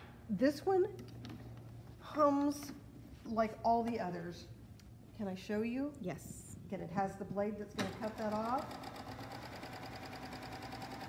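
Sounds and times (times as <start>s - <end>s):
serger sewing machine running: 7.8s - 11.0s.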